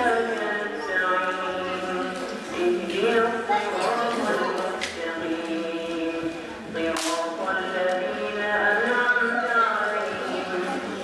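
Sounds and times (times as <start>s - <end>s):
person reciting in held tones: 0.0s - 11.0s.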